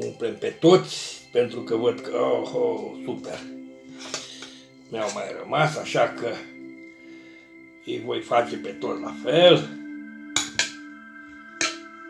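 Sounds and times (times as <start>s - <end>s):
soft sustained background music: 0.0s - 12.0s.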